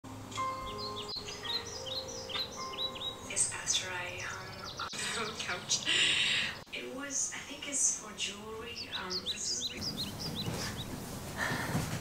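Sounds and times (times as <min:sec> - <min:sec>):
steady held bird tones: 0:00.4 - 0:11.0
birds chirping: 0:00.4 - 0:12.0.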